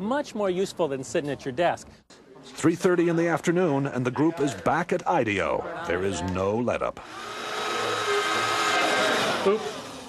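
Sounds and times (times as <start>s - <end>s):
small motor whirring: 7.0s - 10.0s.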